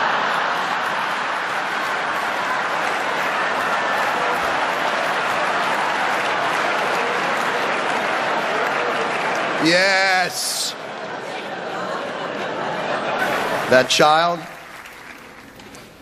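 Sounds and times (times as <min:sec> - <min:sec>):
audience laughing: 0:00.0 - 0:14.7
audience applauding: 0:00.0 - 0:16.0.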